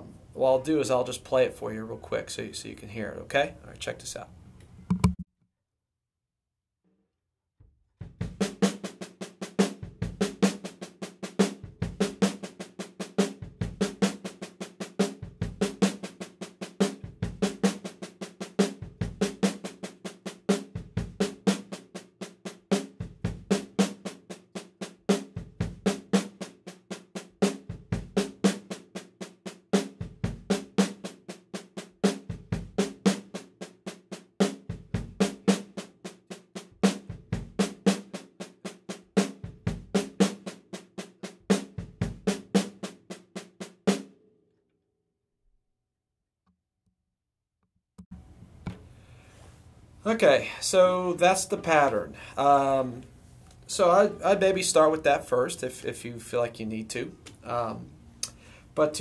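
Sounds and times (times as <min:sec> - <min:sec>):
snare drum accents and rolls: 0:08.0 - 0:44.1, 0:50.1 - 0:53.0, 0:53.6 - 0:57.8.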